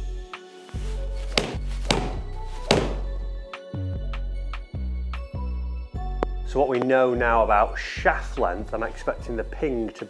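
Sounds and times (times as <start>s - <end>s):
background music with beat: 0.0s - 10.0s
golf club hitting ball: 1.3s - 3.2s.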